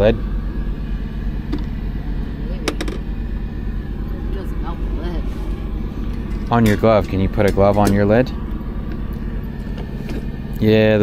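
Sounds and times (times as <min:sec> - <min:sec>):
engine drone inside cab: 0:00.0 - 0:11.0.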